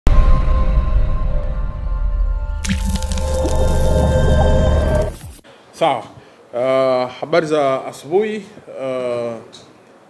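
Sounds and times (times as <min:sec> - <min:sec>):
intro music with low drone: 0:00.1 - 0:05.3.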